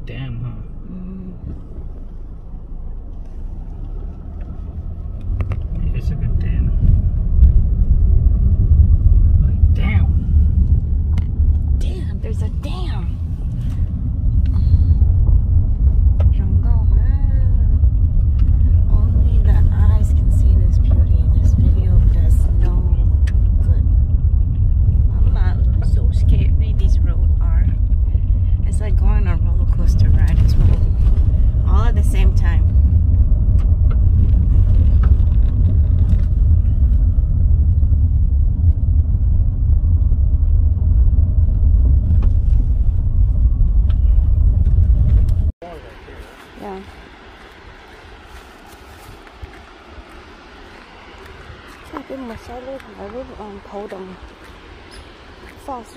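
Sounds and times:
tyres rumbling on gravel: 1.5 - 55.9.

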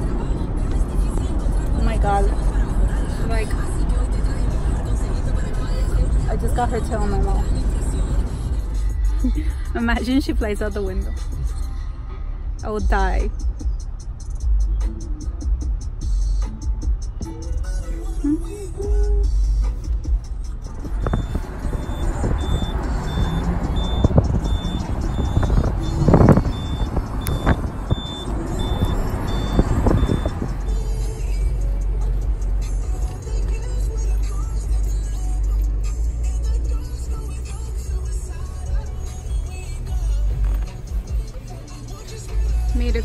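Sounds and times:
car engine and road rumble: 0.0 - 43.0
high repeating beep: 20.9 - 30.6
wind rush through open window: 20.9 - 30.6.

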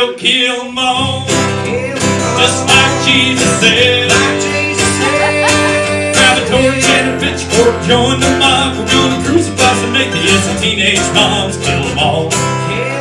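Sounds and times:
acoustic guitar: 0.0 - 13.0
mandolin: 1.0 - 13.0.

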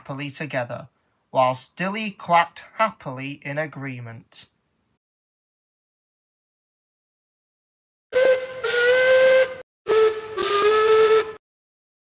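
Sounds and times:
steam locomotive whistle: 8.1 - 11.4.

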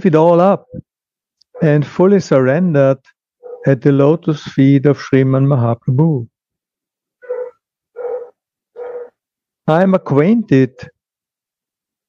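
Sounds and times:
dog barking: 1.6 - 1.8, 3.4 - 3.7, 7.2 - 9.2.

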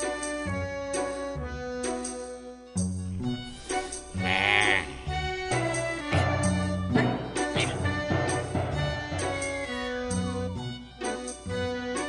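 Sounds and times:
background film score music: 0.0 - 12.0.

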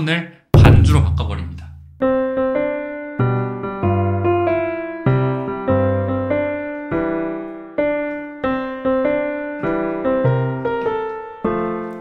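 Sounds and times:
slow electronic keyboard piano melody: 2.0 - 12.0.

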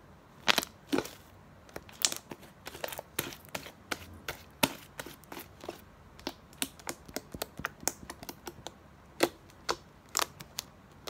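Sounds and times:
slime clicking and popping: 6.2 - 10.7.

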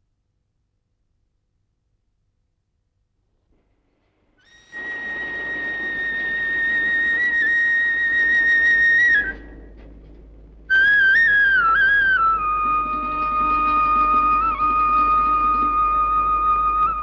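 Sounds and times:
flute melody: 4.6 - 9.7, 10.7 - 17.0.

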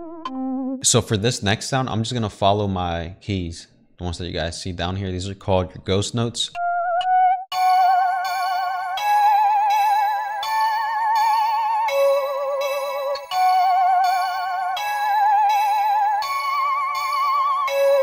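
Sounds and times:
synth lead melody with vibrato: 0.0 - 0.8, 6.6 - 18.0
high sustained synth tones: 6.6 - 18.0.

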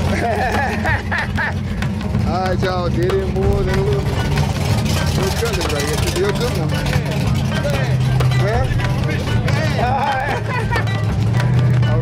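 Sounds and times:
background music: 0.0 - 12.0
car engines idling: 0.0 - 12.0
people's voices: 0.0 - 12.0.

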